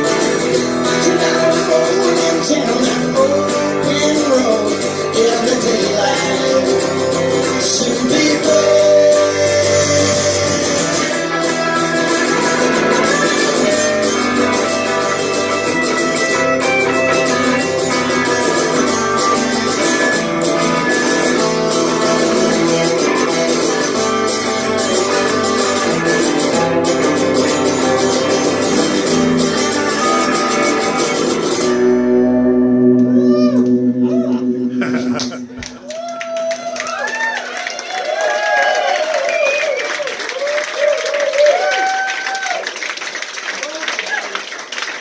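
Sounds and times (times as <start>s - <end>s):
acoustic guitar strumming chords: 0.0s - 35.9s
electric guitar strumming chords: 0.0s - 36.2s.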